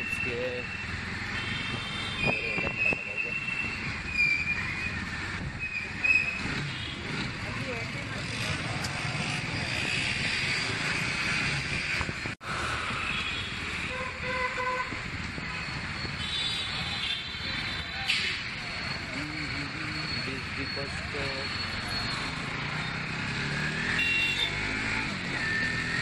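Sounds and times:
road and wind noise: 0.0 - 26.0
long vehicle horn: 13.1 - 15.0, 23.8 - 24.7
vehicle horn toots: 13.2 - 15.0, 23.8 - 24.7.

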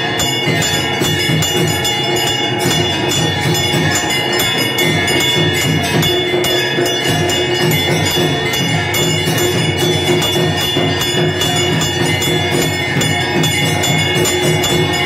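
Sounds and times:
temple bells ringing rapidly: 0.0 - 15.0.

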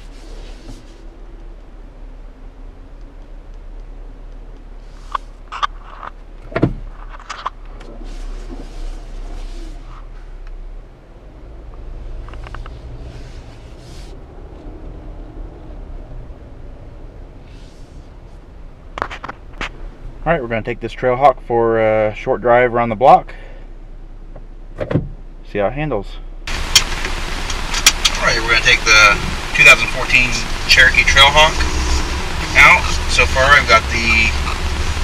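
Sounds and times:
engine and road hum: 0.0 - 35.0.

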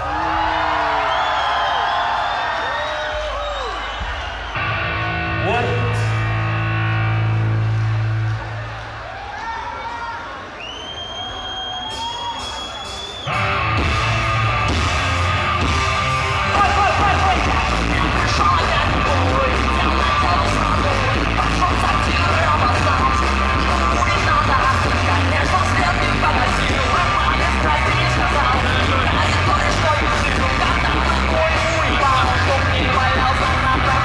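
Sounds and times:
audience shouting: 0.0 - 6.0, 8.1 - 20.1
bass guitar: 4.5 - 8.9, 13.3 - 34.0
live rock band playing: 4.6 - 8.6, 12.4 - 34.0
electric guitar: 4.6 - 8.8, 13.3 - 34.0.

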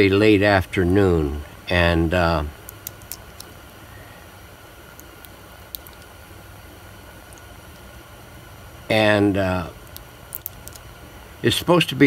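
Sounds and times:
low room hiss and hum: 0.0 - 12.0.

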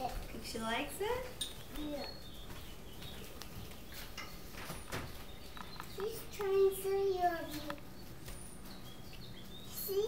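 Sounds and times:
faint bird chirp: 0.7 - 10.0.

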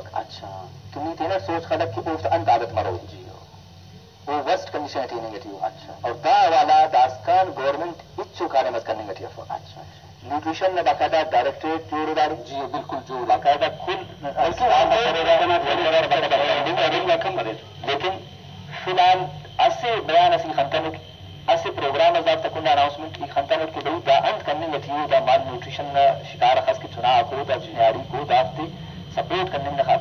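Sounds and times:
steady low hum: 0.0 - 30.0
person speaking: 4.3 - 30.0
person talking: 4.3 - 30.0.

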